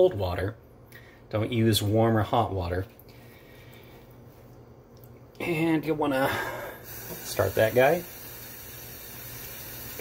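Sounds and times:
tap water running into sink: 0:06.9 - 0:10.0.

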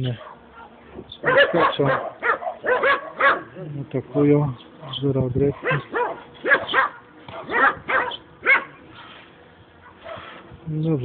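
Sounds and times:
dog barking: 0:00.2 - 0:08.8, 0:09.8 - 0:10.4.

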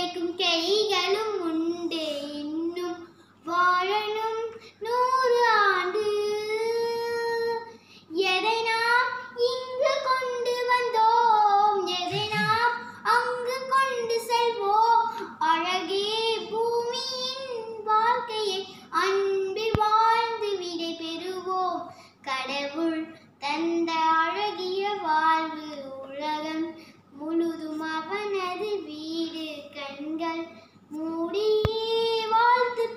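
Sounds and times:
young girl singing: 0:00.0 - 0:32.9.

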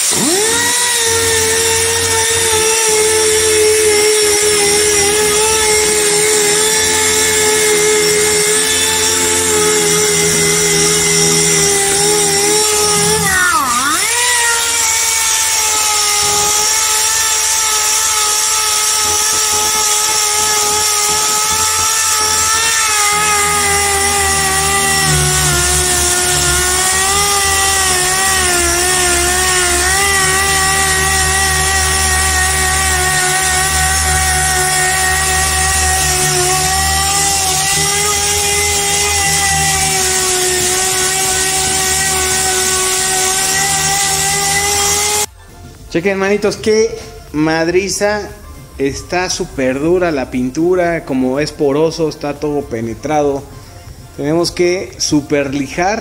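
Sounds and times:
air sander whining: 0:00.0 - 0:56.0.

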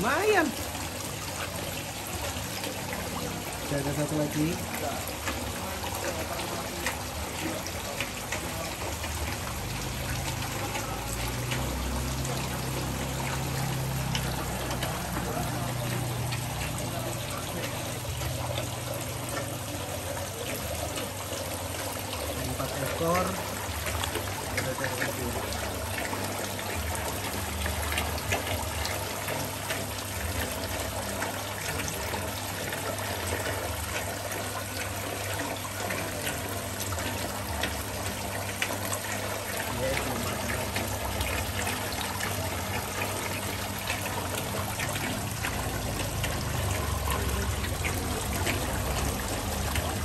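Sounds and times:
water pouring from pipe into pond: 0:00.0 - 0:50.0.

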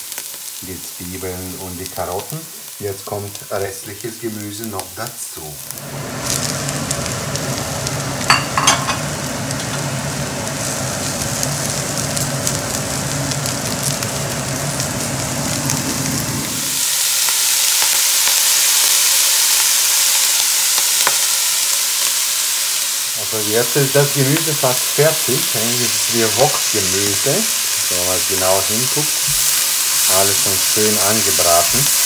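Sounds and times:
vegetables sizzling in a pot: 0:00.0 - 0:32.0.

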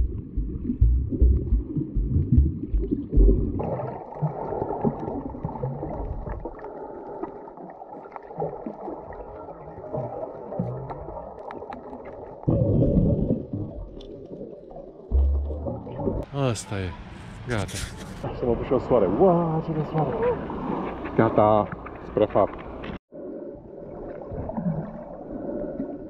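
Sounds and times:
muffled underwater thumping: 0:00.0 - 0:04.4, 0:15.1 - 0:16.2
muffled underwater wash: 0:00.0 - 0:16.3, 0:18.0 - 0:26.0.

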